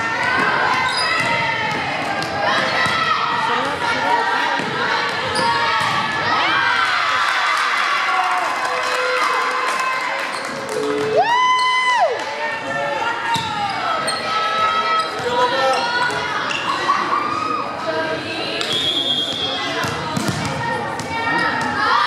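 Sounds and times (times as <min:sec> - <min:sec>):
people shouting and cheering: 0:00.0 - 0:22.0
volleyball hits: 0:18.6 - 0:21.8.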